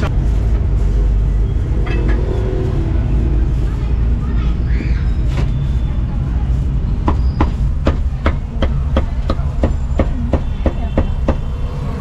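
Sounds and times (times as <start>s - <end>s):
steady low rumble: 0.0s - 9.7s.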